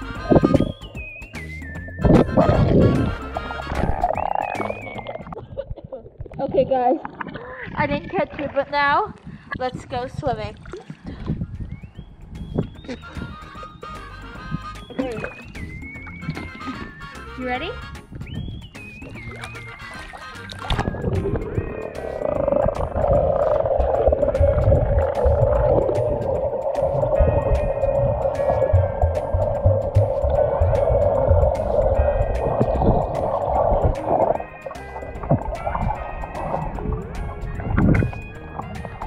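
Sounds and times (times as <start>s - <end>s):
background music: 0.0s - 5.3s, 12.0s - 39.0s
muffled underwater water noise: 2.0s - 11.5s, 19.1s - 39.0s.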